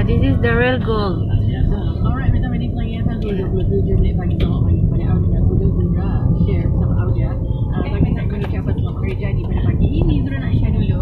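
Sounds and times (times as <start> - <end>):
car road and engine rumble: 0.0 - 11.0
indistinct voices talking: 0.0 - 11.0.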